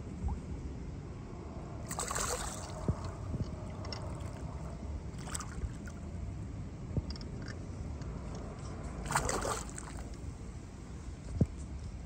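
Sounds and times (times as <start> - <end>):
low steady rumble: 0.0 - 12.0
water sloshing against boat hull: 1.9 - 6.0, 9.0 - 10.3.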